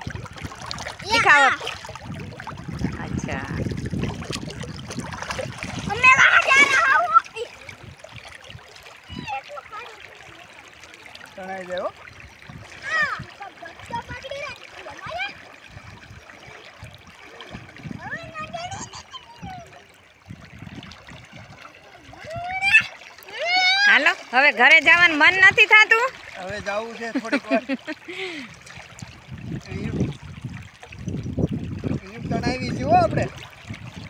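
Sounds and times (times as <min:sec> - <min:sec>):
river water flowing: 0:00.0 - 0:34.0
water splashing: 0:00.0 - 0:34.0
child calling out: 0:05.9 - 0:07.6, 0:09.0 - 0:10.1, 0:12.8 - 0:15.4, 0:18.0 - 0:19.8, 0:22.2 - 0:24.1.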